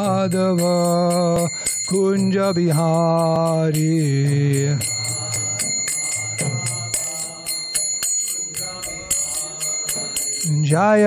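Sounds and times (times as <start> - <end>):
small hand cymbals struck: 0.0 - 11.0.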